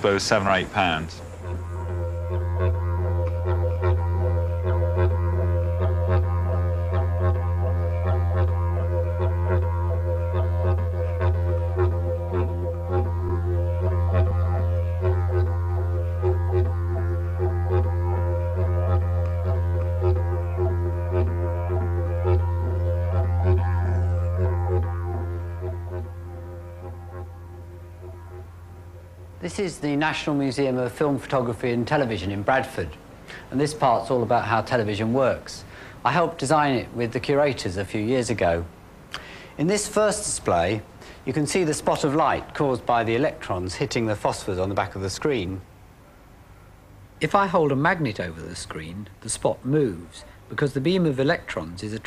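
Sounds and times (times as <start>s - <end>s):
didgeridoo drone: 0.0s - 30.8s.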